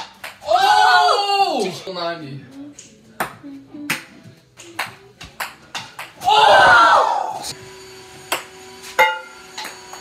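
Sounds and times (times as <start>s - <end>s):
ping pong ball bouncing on floor: 4.6s - 6.2s.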